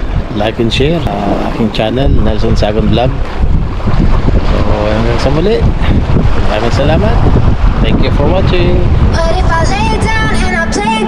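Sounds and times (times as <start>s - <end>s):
wind buffeting microphone: 0.0s - 11.0s
man talking: 0.3s - 3.2s, 4.5s - 9.0s.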